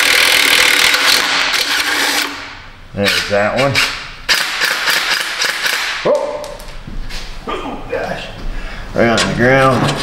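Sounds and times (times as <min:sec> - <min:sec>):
cordless impact driver spinning: 0:00.0 - 0:02.4.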